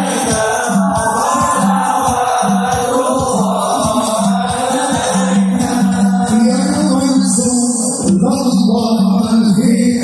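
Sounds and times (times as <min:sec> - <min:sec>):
group of voices chanting: 0:00.0 - 0:07.0
frame drums beating: 0:00.0 - 0:09.9.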